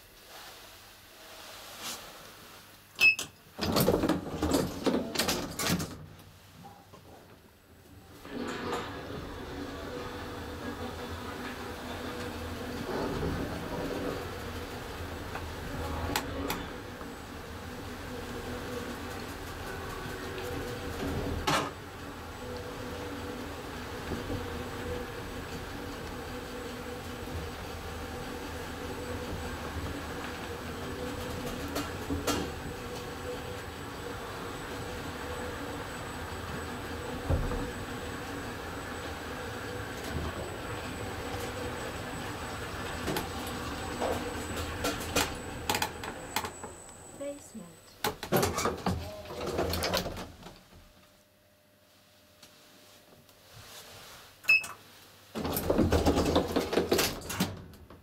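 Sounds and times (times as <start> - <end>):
elevator running hum and whine: 3.0 - 51.2, 55.4 - 58.0.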